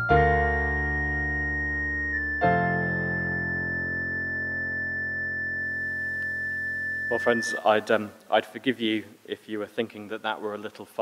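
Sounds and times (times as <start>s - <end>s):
keyboard sustained chord: 0.0s - 7.9s
pure high tone: 0.0s - 8.2s.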